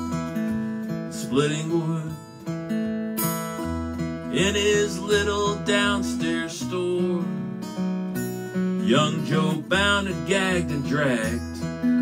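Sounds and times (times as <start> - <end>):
acoustic guitar strumming chords: 0.0 - 12.0
person singing: 4.3 - 7.4, 8.8 - 12.0.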